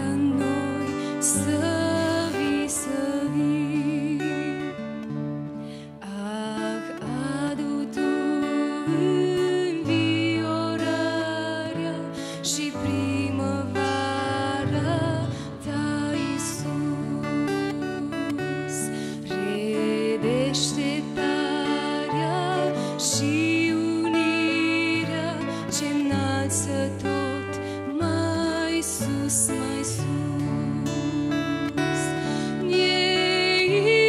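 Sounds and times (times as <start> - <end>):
acoustic guitar chords: 0.0 - 34.0
woman singing into a microphone: 0.0 - 34.0.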